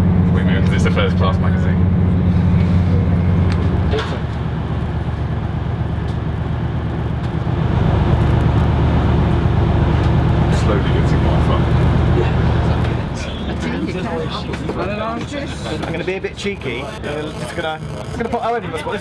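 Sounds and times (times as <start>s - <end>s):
train running rumble: 0.0s - 18.2s
diesel train engine drone: 0.0s - 19.0s.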